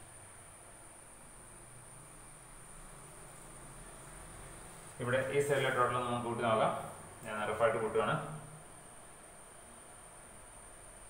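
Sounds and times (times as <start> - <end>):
speech: 5.0 - 8.5.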